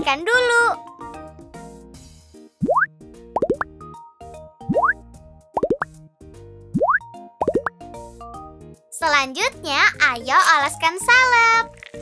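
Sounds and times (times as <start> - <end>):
light children's music: 0.0 - 12.0
cartoon bloop sound effects: 2.6 - 3.7, 4.7 - 5.0, 5.6 - 5.9, 6.8 - 7.7.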